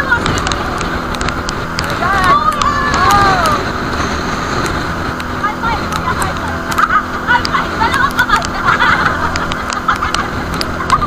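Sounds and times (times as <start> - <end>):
boat engine running: 0.0 - 11.0
choppy sea rushing: 0.0 - 11.0
wind noise: 0.0 - 11.0.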